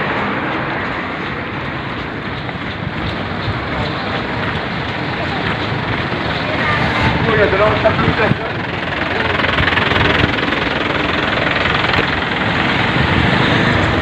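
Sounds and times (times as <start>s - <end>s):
wind on microphone: 0.0s - 8.7s
street traffic: 0.0s - 14.0s.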